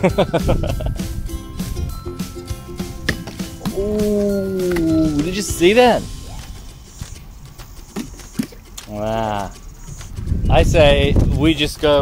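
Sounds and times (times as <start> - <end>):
outdoor background: 0.0 - 12.0.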